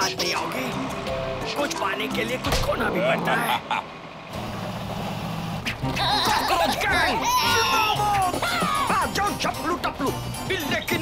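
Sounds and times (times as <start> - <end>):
cartoon van engine drone: 0.0 - 11.0.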